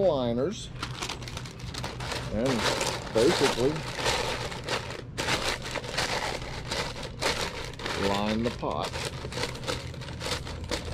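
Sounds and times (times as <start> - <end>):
stiff paper crinkling: 0.8 - 10.9.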